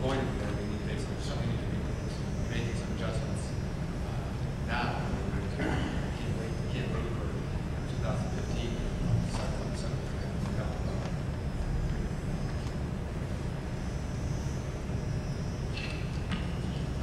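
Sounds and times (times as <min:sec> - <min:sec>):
faint indistinct speech: 0:00.0 - 0:11.2
low room rumble: 0:00.0 - 0:17.0.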